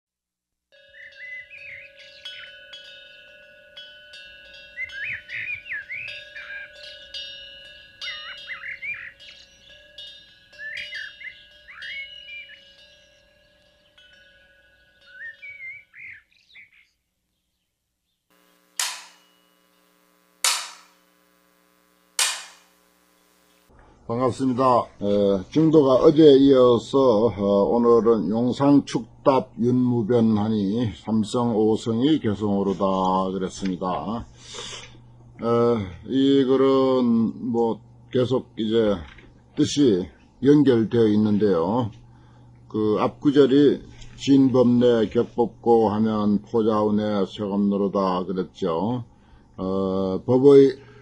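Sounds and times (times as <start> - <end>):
small birds chirping: 0.9 - 3.5, 4.5 - 18.4
faint steady tone: 18.3 - 25.4, 26.0 - 51.0
sharp strikes: 18.4 - 23.6.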